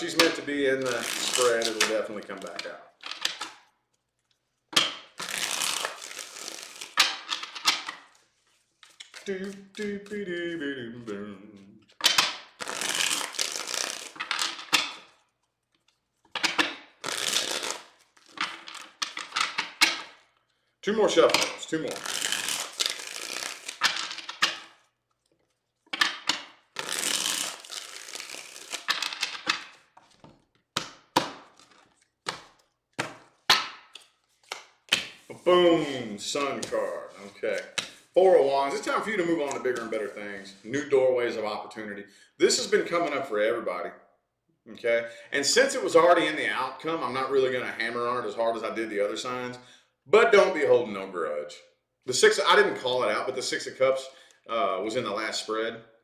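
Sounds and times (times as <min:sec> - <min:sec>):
cards rustling: 0:00.0 - 0:11.2, 0:11.8 - 0:20.3, 0:21.1 - 0:40.6.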